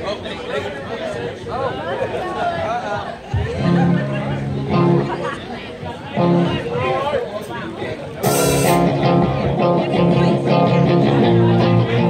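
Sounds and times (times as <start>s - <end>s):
voices chattering: 0.0s - 12.0s
electric guitar chords: 3.4s - 5.4s, 6.2s - 6.8s, 8.2s - 12.0s.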